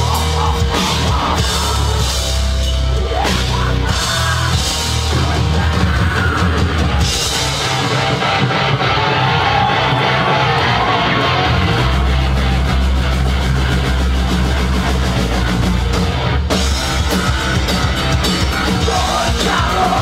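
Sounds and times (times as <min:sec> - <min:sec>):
bass guitar: 0:00.0 - 0:20.0
drum kit: 0:00.0 - 0:20.0
electric guitar: 0:00.0 - 0:20.0.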